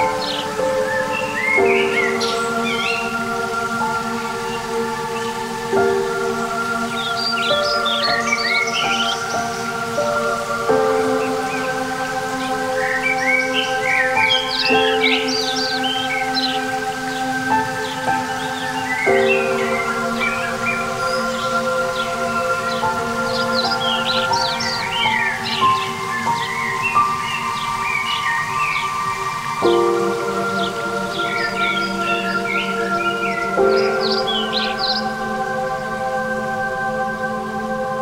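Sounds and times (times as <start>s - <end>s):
birdsong chirping: 0.0s - 38.0s.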